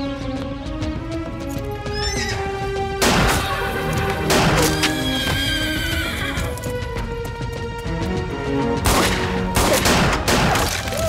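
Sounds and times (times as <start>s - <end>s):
action film score: 0.0s - 11.0s.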